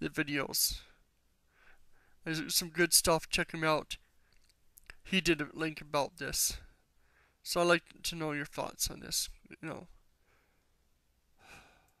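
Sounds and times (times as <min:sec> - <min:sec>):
person breathing or sighing: 0:11.4 - 0:12.0.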